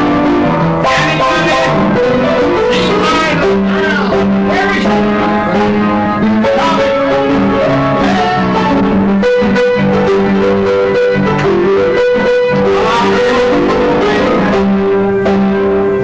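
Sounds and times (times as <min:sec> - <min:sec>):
ragtime piano playing: 0:00.0 - 0:16.0.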